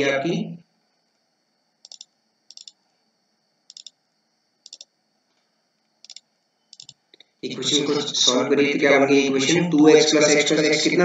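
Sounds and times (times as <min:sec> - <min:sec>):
faint computer mouse clicks: 0:01.8 - 0:02.8, 0:03.7 - 0:04.0, 0:04.6 - 0:07.3.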